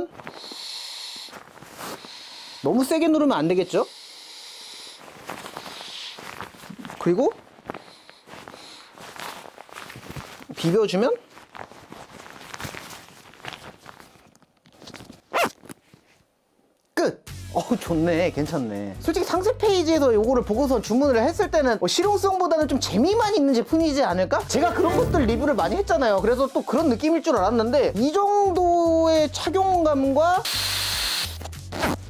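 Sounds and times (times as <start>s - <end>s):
air hissing from inflatable pillow: 0.3s - 2.7s, 7.8s - 9.2s
inflatable hood rustling: 1.3s - 2.1s, 5.0s - 14.4s.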